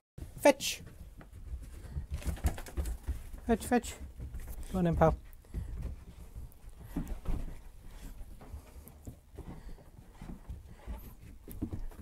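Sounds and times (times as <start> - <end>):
dog paws pattering on carpet: 0.2 - 12.0.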